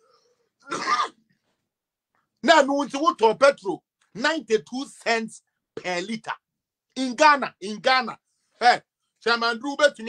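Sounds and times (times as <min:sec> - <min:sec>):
man clearing his throat: 0:00.6 - 0:01.2.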